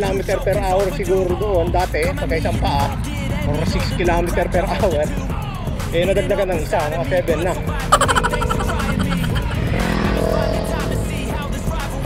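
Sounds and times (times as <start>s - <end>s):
background music: 7.5s - 9.9s
man laughing: 8.0s - 9.6s.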